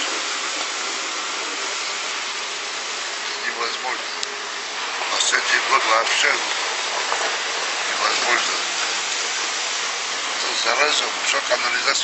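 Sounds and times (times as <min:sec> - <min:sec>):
steady hissing noise: 0:00.0 - 0:12.0.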